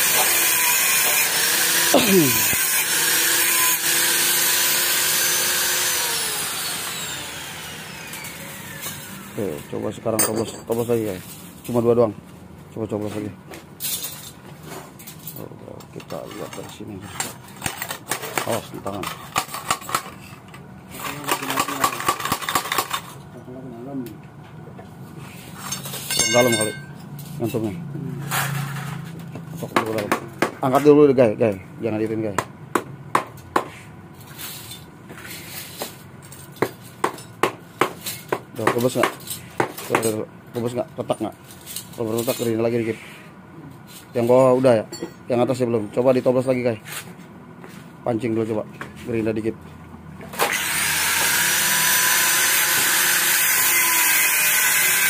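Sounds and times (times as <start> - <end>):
angle grinder grinding metal: 0.0 - 10.8, 25.8 - 27.0, 50.4 - 55.0.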